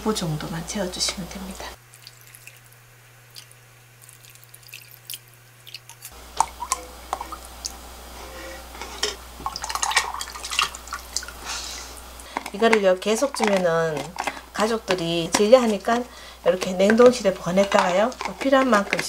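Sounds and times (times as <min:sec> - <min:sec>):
broth pouring and dripping: 0:01.8 - 0:07.9, 0:09.3 - 0:12.5.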